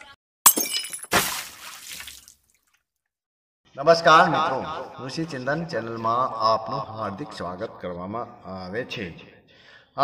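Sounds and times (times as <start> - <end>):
glass crashing and shattering: 0.5 - 2.1.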